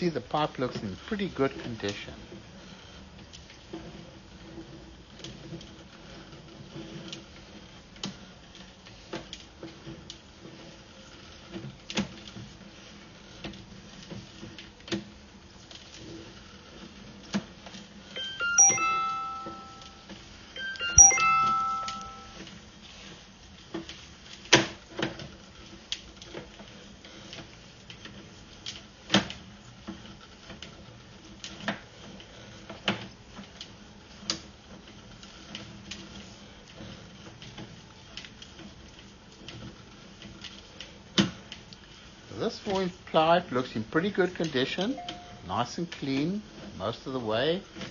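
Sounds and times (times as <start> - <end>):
falling electronic chimes: 18.2 - 20.0, 20.6 - 22.4.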